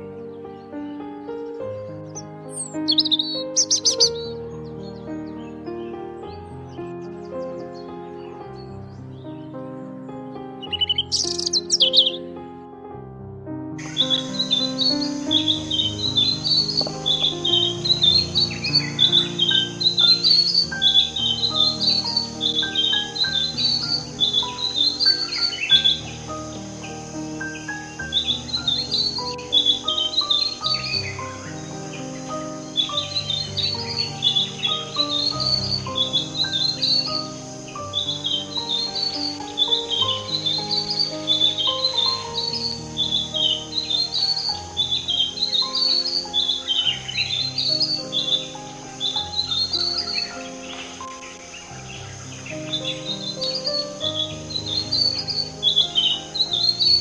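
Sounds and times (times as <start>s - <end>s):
recording hiss: 0.0s - 12.4s, 13.5s - 57.0s
robin singing: 0.0s - 12.6s, 13.8s - 57.0s
soft instrumental music: 0.0s - 57.0s.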